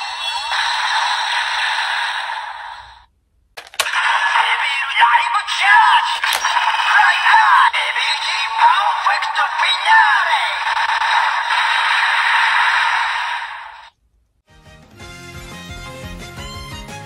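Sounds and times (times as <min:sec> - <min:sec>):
toy electronic voice calls: 0:00.0 - 0:03.0, 0:03.8 - 0:13.9
tinny toy speaker music: 0:03.8 - 0:12.5.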